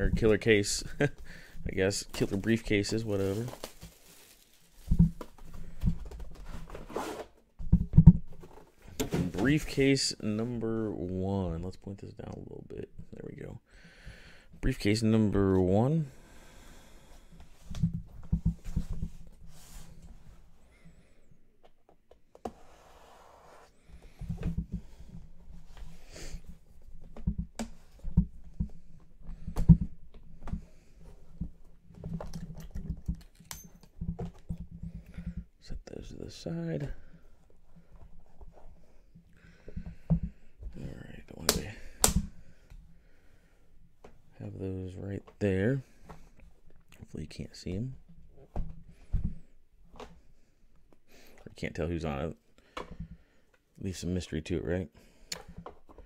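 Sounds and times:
cardboard box sliding: 22.5 - 23.8.

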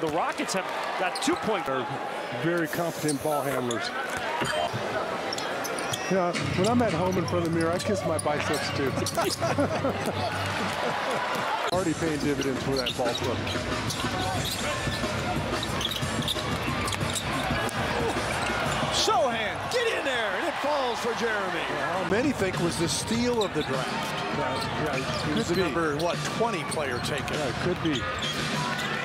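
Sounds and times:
crowd hubbub: 0.0 - 29.0
shoe squeaks and clicks: 1.0 - 1.7, 2.5 - 10.7, 11.8 - 20.0, 22.7 - 29.0
basketball bouncing on court: 12.8 - 18.9.

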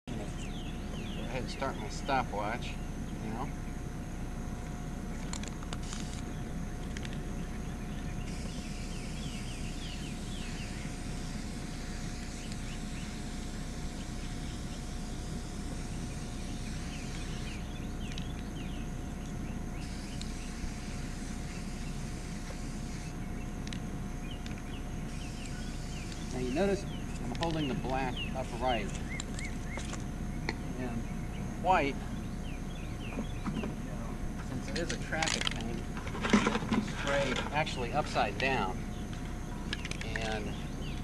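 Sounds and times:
low outdoor rumble: 0.0 - 41.0
spray paint can hissing: 8.3 - 14.2, 19.8 - 23.1.

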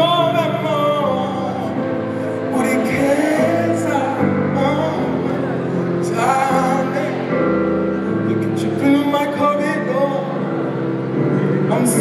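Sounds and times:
keyboard playing sustained chords: 0.0 - 12.0
man singing: 0.0 - 12.0.

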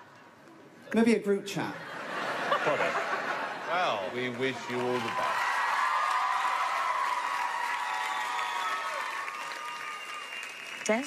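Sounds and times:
studio audience applauding: 3.8 - 11.0.

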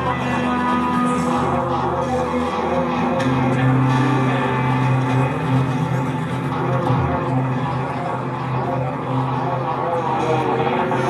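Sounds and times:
electric guitar: 0.0 - 11.0
held low bass notes: 0.0 - 11.0.

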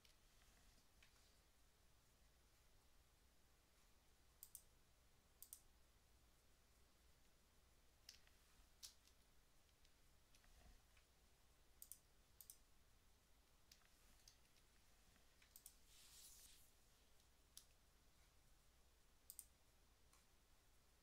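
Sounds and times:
faint room hum: 0.0 - 21.0
computer mouse clicks: 4.4 - 4.7, 5.4 - 5.7, 8.0 - 11.1, 11.8 - 12.7, 13.6 - 15.9, 17.2 - 17.8, 19.3 - 20.3.

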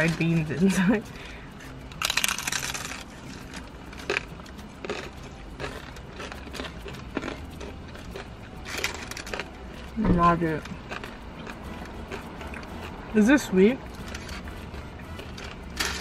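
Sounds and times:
crunching of hard-shell tacos: 1.3 - 10.0, 10.6 - 13.1, 13.8 - 16.0.

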